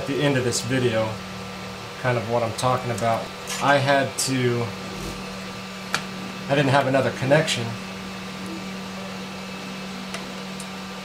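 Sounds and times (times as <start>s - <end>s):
steady low hum with hiss: 0.0s - 11.0s.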